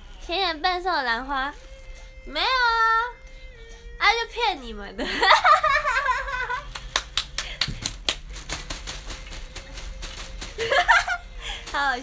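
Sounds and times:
laughter: 5.0 - 6.8, 10.6 - 11.3.

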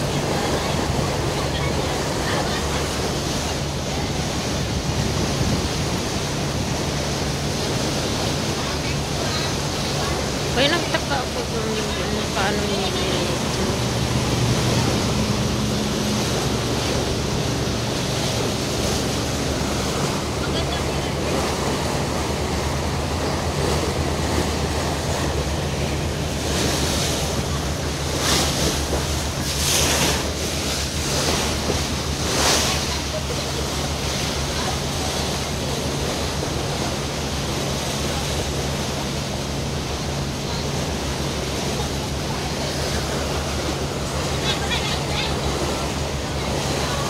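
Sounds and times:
boat engine hum: 0.0 - 47.0
water rushing along hull: 0.0 - 47.0.

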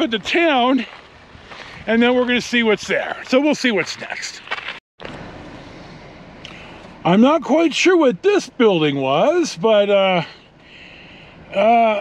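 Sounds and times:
tyres rolling on gravel road: 0.0 - 12.0.

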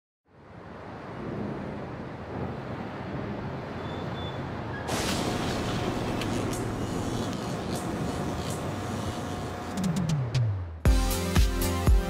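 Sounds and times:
distant traffic hum: 0.3 - 10.8.

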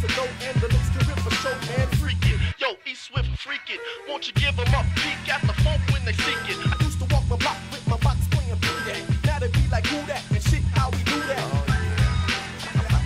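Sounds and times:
hip hop beat: 0.0 - 13.0
rapping: 0.0 - 13.0.

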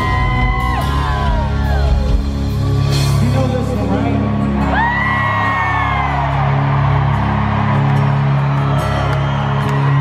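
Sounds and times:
live rock band music: 0.0 - 10.0
crowd member whooping: 4.6 - 10.0.

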